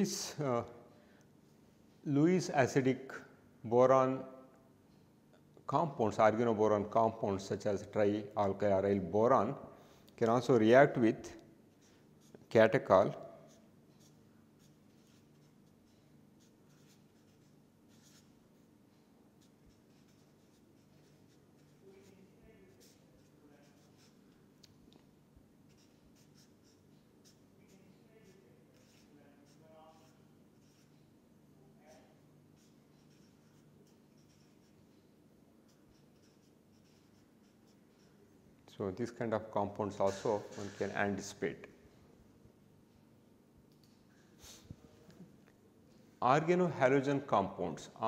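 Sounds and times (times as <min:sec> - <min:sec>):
low room hum: 0:00.0 - 0:48.0
felt-tip marker scratching on paper: 0:11.7 - 0:12.4, 0:13.4 - 0:18.7, 0:19.4 - 0:24.2, 0:25.7 - 0:31.1, 0:31.9 - 0:35.0, 0:35.6 - 0:38.3.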